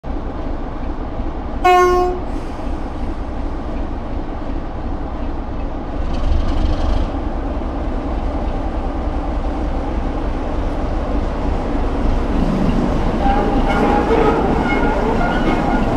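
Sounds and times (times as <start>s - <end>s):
diesel locomotive engine running: 0.1s - 15.9s
loud horn blast: 1.6s - 2.4s, 13.2s - 15.9s.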